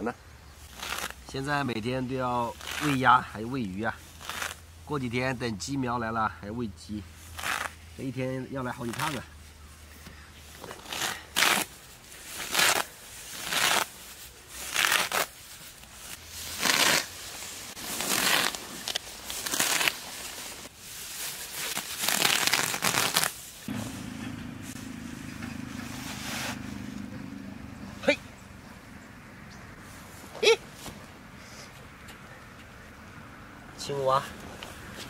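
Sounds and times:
grass torn up by hand: 0.6s - 1.7s, 2.4s - 3.3s, 4.0s - 4.6s, 7.2s - 7.8s, 8.7s - 9.3s, 10.5s - 23.8s.

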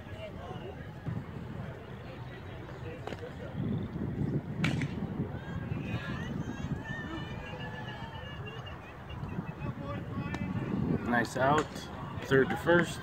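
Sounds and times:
spectators talking: 0.0s - 13.0s.

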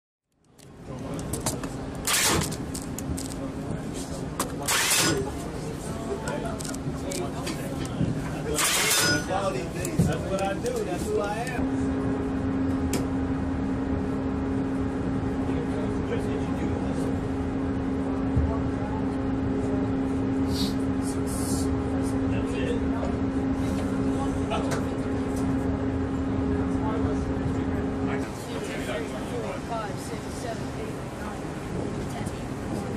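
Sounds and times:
low machinery hum: 0.4s - 32.9s.

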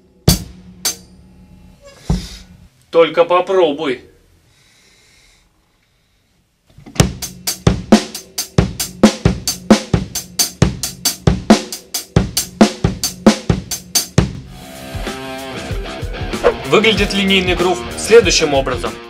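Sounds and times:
drum kit playing: 0.2s - 1.1s, 7.0s - 19.0s.

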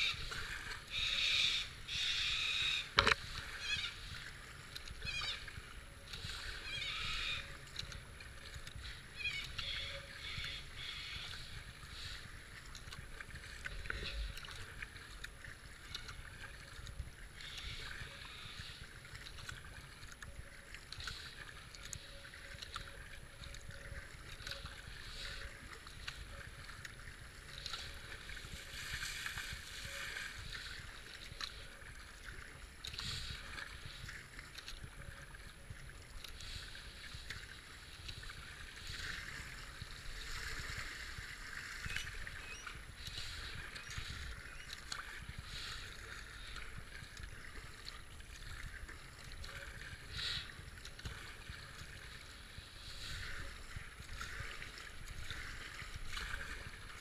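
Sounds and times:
paddle strokes splashing: 0.0s - 57.0s
water rushing along hull: 0.0s - 57.0s.

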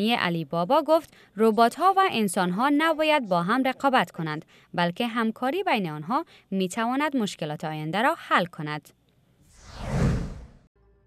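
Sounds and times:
whoosh sound effect: 9.5s - 10.7s.

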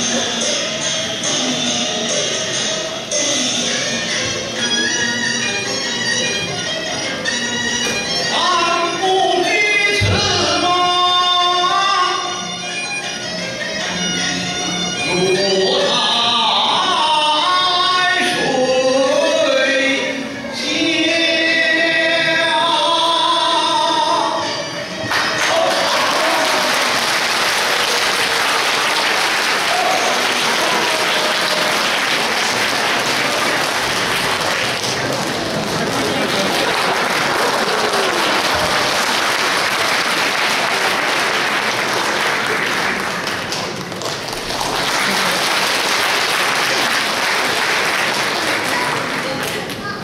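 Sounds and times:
audience applauding: 25.1s - 50.0s.

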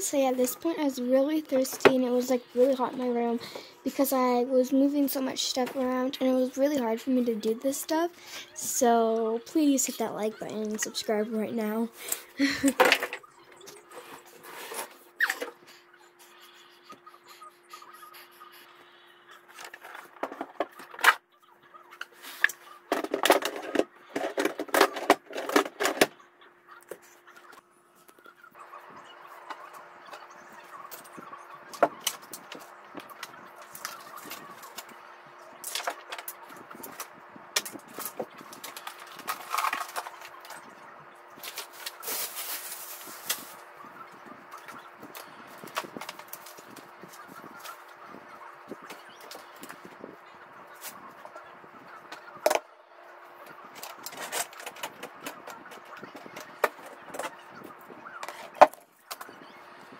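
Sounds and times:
steady hum: 0.0s - 59.9s.

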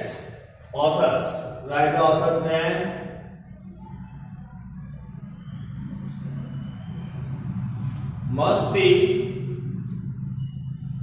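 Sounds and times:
man speaking: 0.0s - 3.1s, 8.3s - 9.4s
low background hum: 0.0s - 11.0s.

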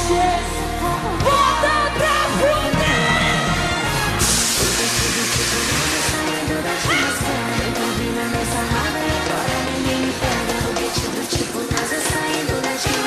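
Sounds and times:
live pop band: 0.0s - 13.0s
bright hissing wash: 4.2s - 6.4s
woman singing and shouting: 6.4s - 7.6s.

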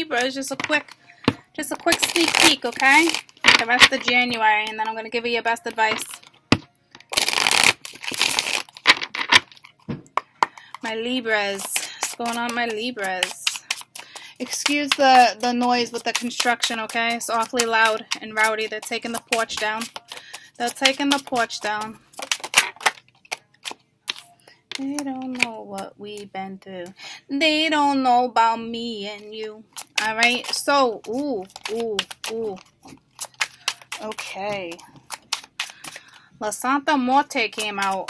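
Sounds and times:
cards riffling: 7.0s - 9.9s, 19.1s - 25.5s, 29.7s - 36.2s.

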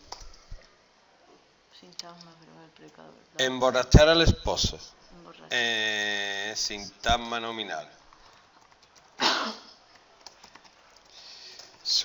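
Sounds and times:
computer keyboard typing: 8.1s - 9.2s, 9.8s - 11.9s
person coughing: 9.2s - 9.8s.

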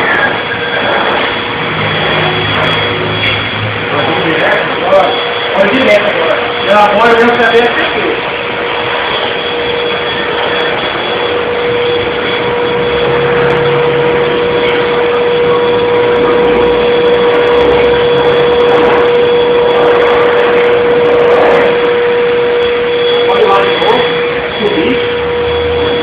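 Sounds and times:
hiss of air: 0.0s - 3.7s
paint sprayer motor whine: 0.0s - 26.0s.

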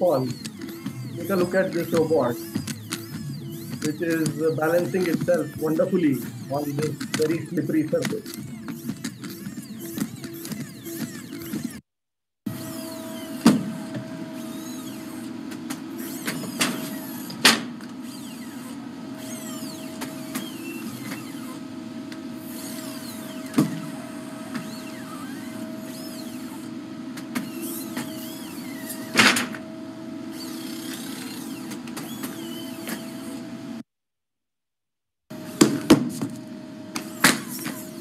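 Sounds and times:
hydraulic actuators humming and whining: 0.0s - 11.8s, 12.5s - 33.8s, 35.3s - 38.0s
sharp knocks on boxes: 35.6s - 36.4s.

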